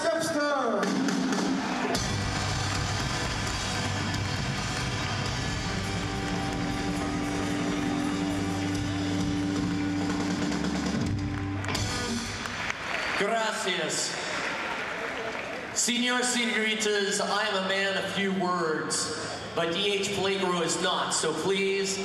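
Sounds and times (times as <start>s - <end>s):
punk rock band playing: 0.8s - 12.6s.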